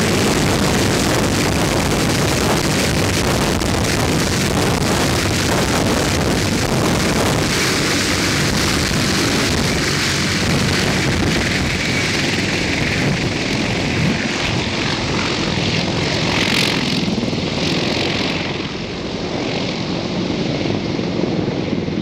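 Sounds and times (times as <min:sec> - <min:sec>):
helicopter rotors and engines: 0:00.0 - 0:22.0.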